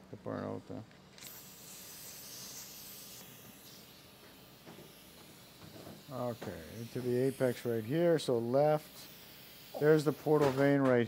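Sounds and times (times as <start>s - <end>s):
faint air hiss from valves: 0.4s - 11.0s.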